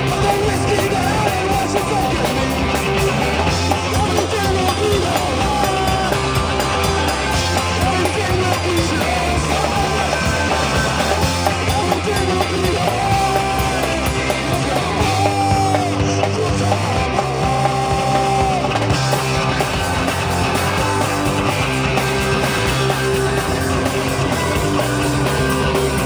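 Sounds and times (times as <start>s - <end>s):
bass guitar: 0.0s - 26.0s
drum kit: 0.0s - 26.0s
electric guitar: 0.0s - 26.0s.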